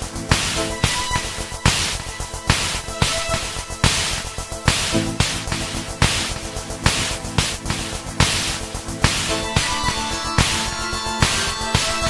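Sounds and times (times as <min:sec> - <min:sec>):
held synthesizer chords: 0:00.0 - 0:12.0
bright synth notes: 0:00.2 - 0:12.0
hissy snare hits: 0:00.3 - 0:12.0.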